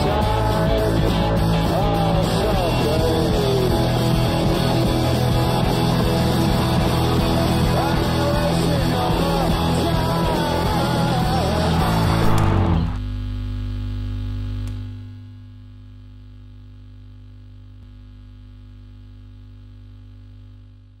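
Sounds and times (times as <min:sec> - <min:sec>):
rock music with singing and drums: 0:00.0 - 0:13.0.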